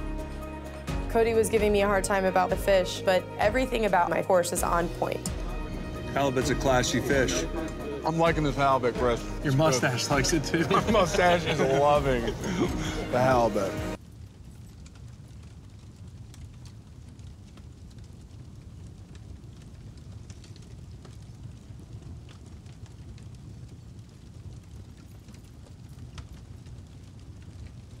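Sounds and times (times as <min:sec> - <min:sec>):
faint fire crackles: 0:00.0 - 0:28.0
fire rumble: 0:00.0 - 0:28.0.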